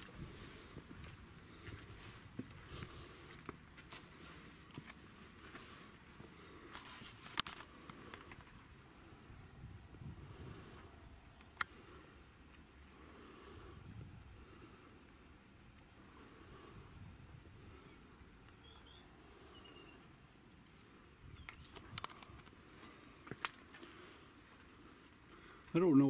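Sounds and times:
small scuffs and ticks: 0.0s - 8.9s, 18.4s - 25.5s
faint background noise: 0.0s - 26.0s
sharp clicks: 21.4s - 22.6s.

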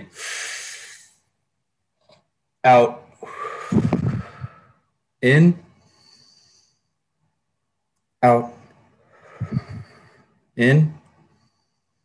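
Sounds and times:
person breathing in deeply: 0.0s - 1.2s, 3.2s - 4.9s, 9.0s - 10.4s.

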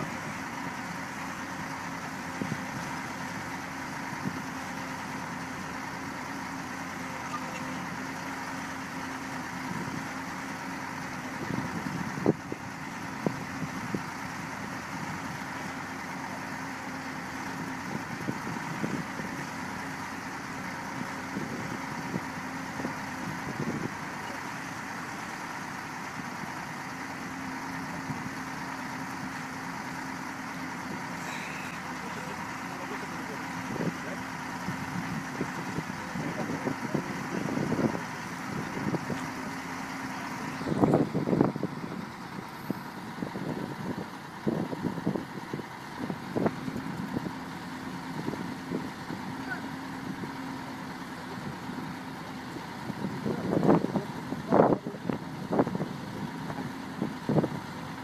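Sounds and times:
excavator diesel engine idling: 0.0s - 58.0s.

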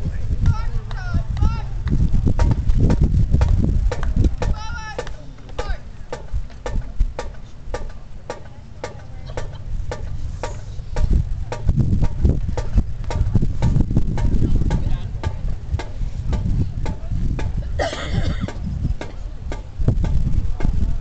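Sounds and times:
murmur of spectators talking: 0.0s - 21.0s
drum sticks clicking: 2.4s - 17.6s, 18.5s - 20.8s.

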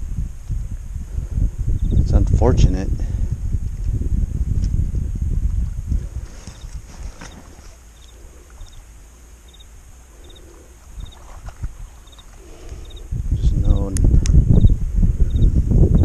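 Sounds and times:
insect chirping: 0.0s - 2.2s, 3.3s - 16.0s
low rumbling on microphone: 0.0s - 16.0s.

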